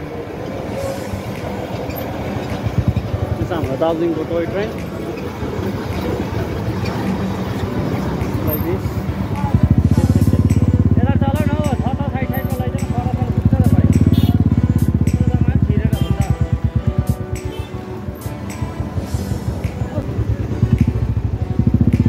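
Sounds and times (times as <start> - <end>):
motorcycle engine throbbing: 1.4 - 18.2, 18.8 - 22.0.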